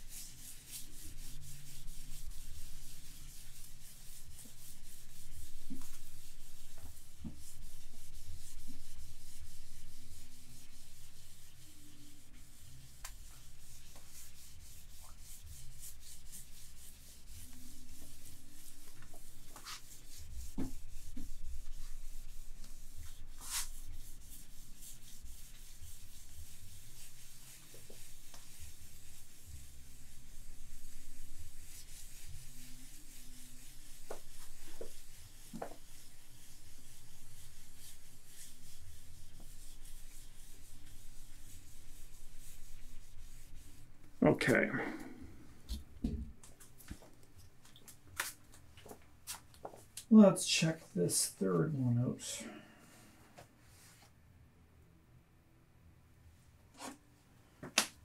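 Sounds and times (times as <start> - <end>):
cloth rubbing on glass: 0.0 - 45.8.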